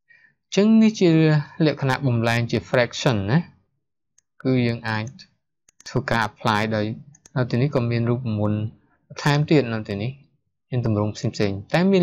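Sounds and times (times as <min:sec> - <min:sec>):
man speaking: 0:00.5 - 0:03.6, 0:04.4 - 0:12.0.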